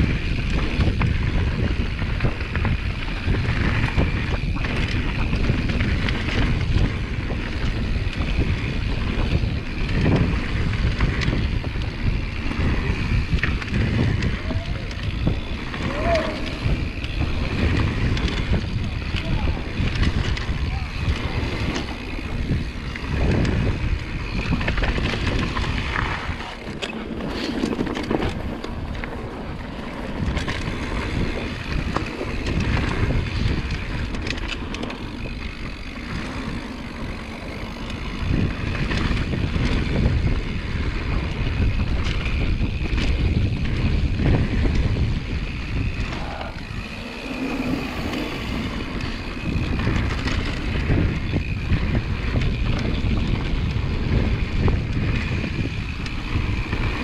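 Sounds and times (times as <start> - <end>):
bike rattling and knocking: 0.0 - 57.0
bike tyres rolling over dirt: 0.0 - 57.0
wind buffeting microphone: 0.0 - 57.0.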